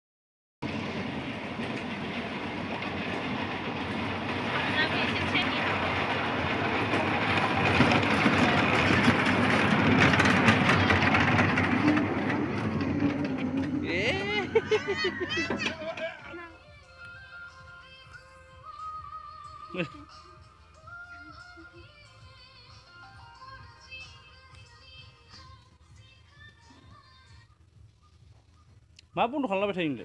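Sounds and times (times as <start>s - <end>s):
kiddie train mechanical rumble: 0.6s - 27.0s.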